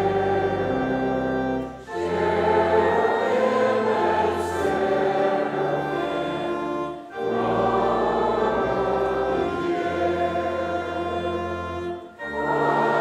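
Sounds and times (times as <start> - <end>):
choir singing a hymn: 0.0 - 13.0
organ bass notes: 0.0 - 13.0.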